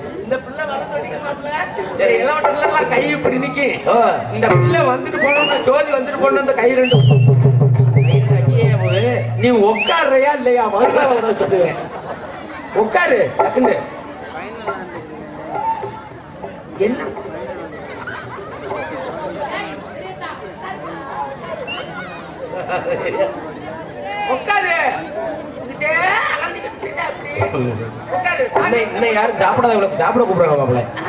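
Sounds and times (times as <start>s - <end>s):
men talking: 0.0s - 7.4s, 8.0s - 13.9s, 24.3s - 31.0s
background chatter: 0.0s - 31.0s.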